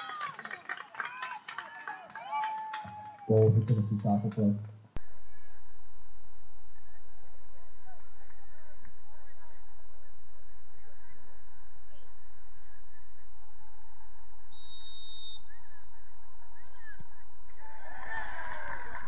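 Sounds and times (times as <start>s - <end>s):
outdoor field noise: 0.0s - 19.0s
referee's whistle: 14.5s - 15.5s.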